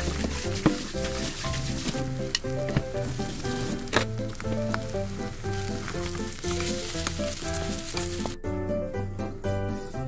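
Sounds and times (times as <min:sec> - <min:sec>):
metal spatula scraping pan: 0:00.0 - 0:04.5, 0:05.5 - 0:08.4
potato pancake sizzling in oil: 0:00.0 - 0:08.4.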